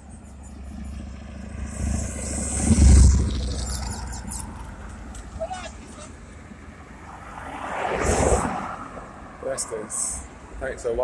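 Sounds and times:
vehicle passing by: 0.4s - 6.1s, 6.8s - 10.2s.

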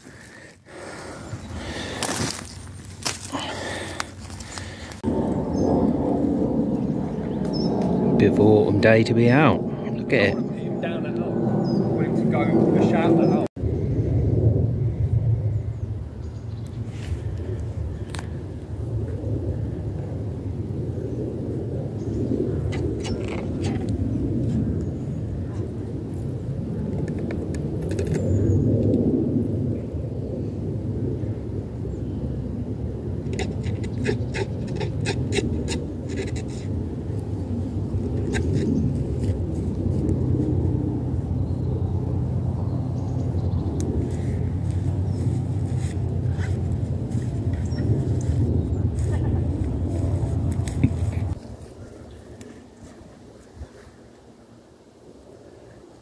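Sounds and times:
wind buffeting microphone: 0.0s - 53.8s.

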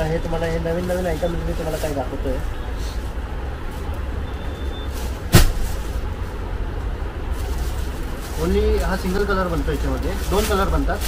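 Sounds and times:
sharp knock: 5.3s - 5.8s.

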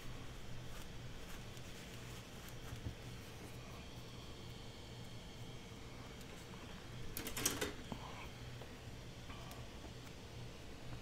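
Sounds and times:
cloth rubbing on paper cover: 0.0s - 4.2s
low steady hum: 0.0s - 11.0s.

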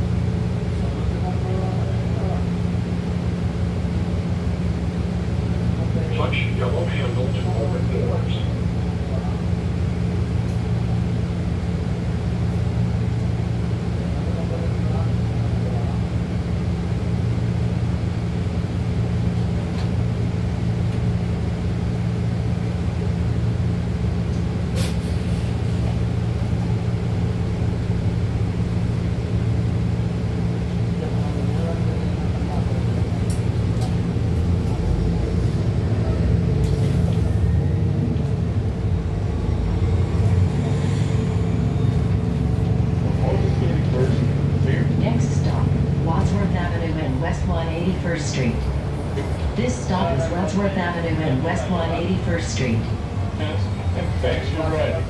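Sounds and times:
bus drivetrain hum: 0.0s - 55.0s
road rumble: 0.0s - 55.0s.

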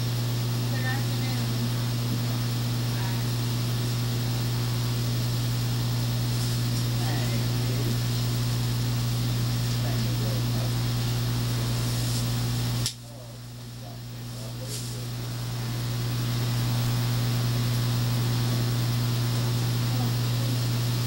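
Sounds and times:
low electrical hum: 0.0s - 21.0s
faint voices talking: 0.6s - 3.9s, 6.3s - 12.4s, 13.0s - 16.7s, 18.3s - 21.0s.

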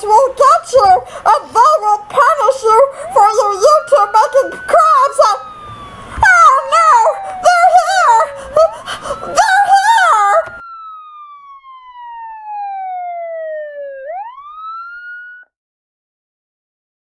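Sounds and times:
voices: 0.0s - 5.5s, 6.2s - 10.6s
police siren wail: 0.0s - 15.5s.

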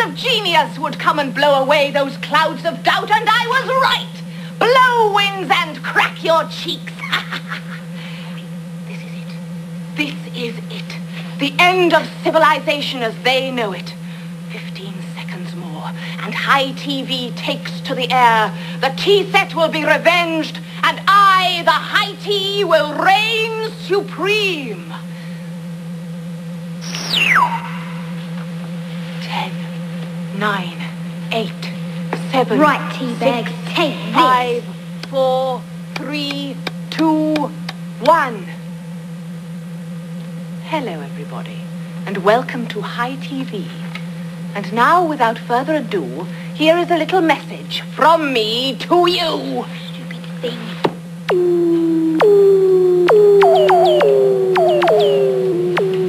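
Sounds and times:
low machine hum: 0.0s - 56.0s
swooping electronic tones: 26.7s - 29.3s, 30.3s - 39.0s, 51.2s - 56.0s
high whistle gliding down: 26.8s - 28.2s, 51.3s - 56.0s.

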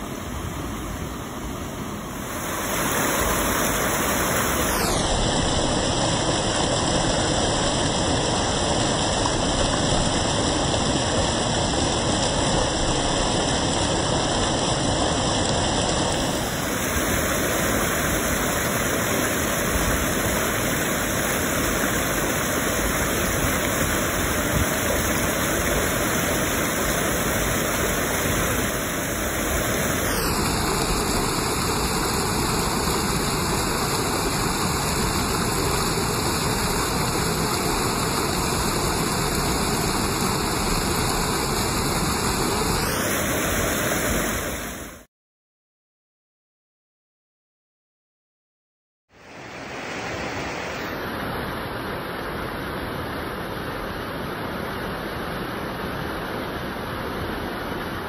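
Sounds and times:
water rushing over a weir: 0.0s - 45.1s, 49.1s - 58.0s.

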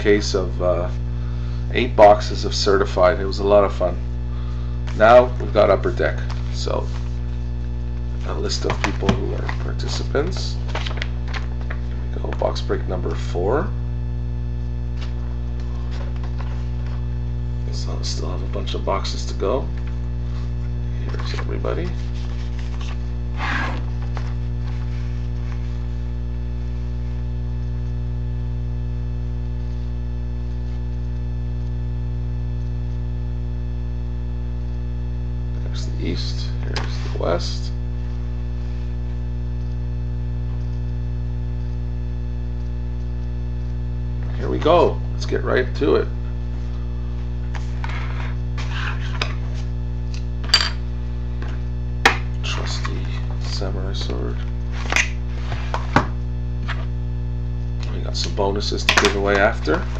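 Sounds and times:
buzzy electrical mains hum: 0.0s - 59.9s.

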